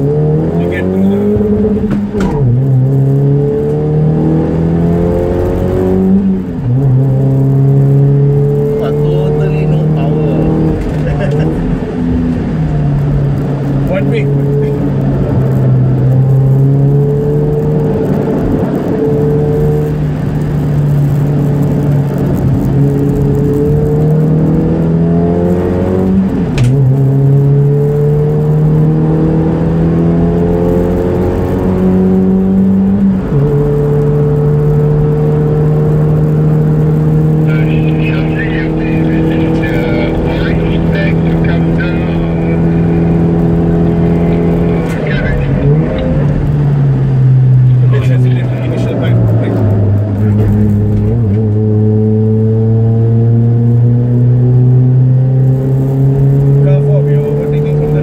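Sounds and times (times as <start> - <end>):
race car engine from inside cabin: 0.0 - 58.0.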